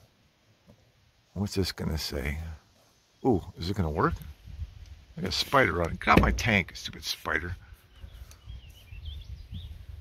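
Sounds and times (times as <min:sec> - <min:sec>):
bird chirps: 0:07.7 - 0:10.0.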